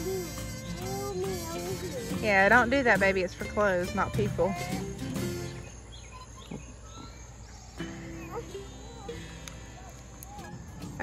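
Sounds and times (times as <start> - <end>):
bird chirps: 0.0 - 2.6, 5.0 - 11.0
faint insect hum: 0.0 - 11.0.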